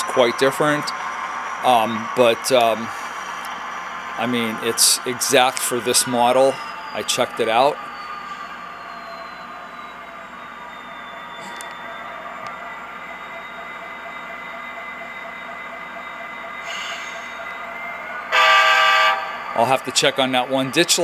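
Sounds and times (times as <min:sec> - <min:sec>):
diesel locomotive engine through speaker: 0:00.0 - 0:21.0
high falling whine: 0:00.0 - 0:21.0.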